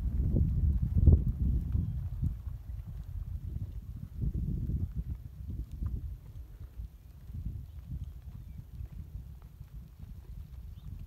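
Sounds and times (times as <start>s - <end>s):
horse hoofbeats on dirt: 0.0s - 11.0s
wind rumble on microphone: 0.0s - 11.0s.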